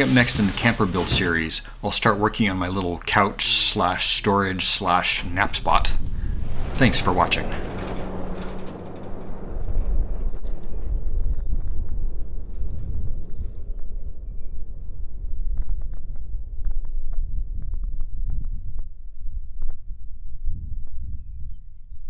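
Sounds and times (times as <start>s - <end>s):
tyres on gravel: 0.0s - 10.6s
wind rumble on microphone: 4.4s - 22.0s
pickup engine driving away: 4.8s - 12.0s.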